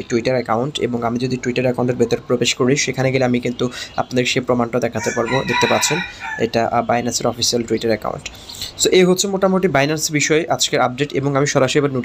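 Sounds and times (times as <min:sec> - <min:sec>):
man's voice: 0:00.0 - 0:12.0.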